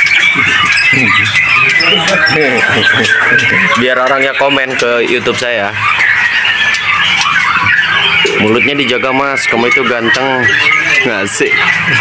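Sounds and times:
young birds calling: 0.0 - 12.0.

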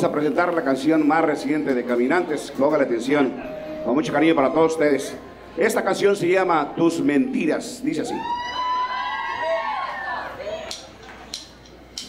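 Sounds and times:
audience cheering: 8.0 - 10.8
whoops and shouts: 8.1 - 10.8.

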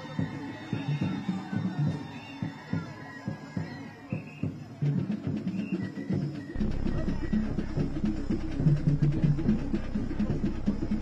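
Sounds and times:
wooden drums drumming: 6.6 - 11.0.

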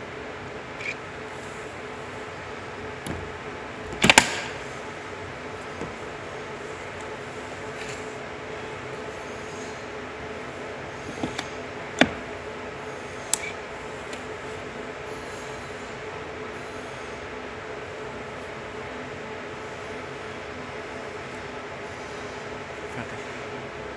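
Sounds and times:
steady hum: 0.0 - 23.9
charging plug clicking into socket: 3.9 - 4.6.

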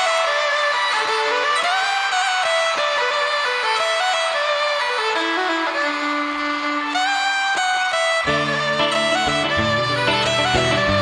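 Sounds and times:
fiddle playing quick melody: 0.0 - 11.0
backing instruments: 8.3 - 11.0.

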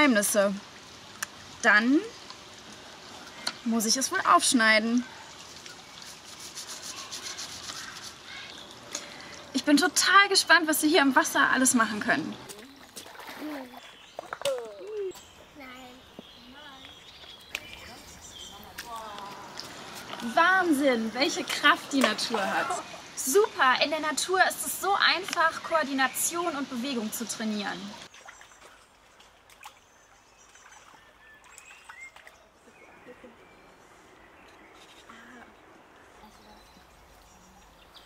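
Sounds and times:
small child's voice: 13.4 - 13.9, 14.5 - 16.9
bird chirps: 13.7 - 19.0, 30.4 - 38.0
stream rushing: 17.4 - 28.1
soft adult voices: 32.6 - 33.8, 35.0 - 37.7.

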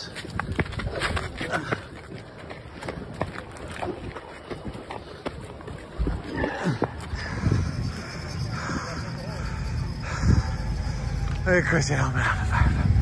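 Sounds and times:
hurried footsteps on asphalt: 0.0 - 8.7
person breathing hard: 6.3 - 11.2.

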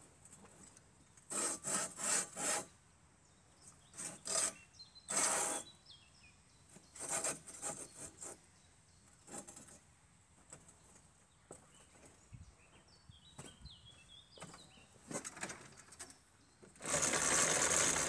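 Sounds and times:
hoe blades scraping through soil: 1.3 - 2.7, 3.8 - 5.7, 6.8 - 8.4.

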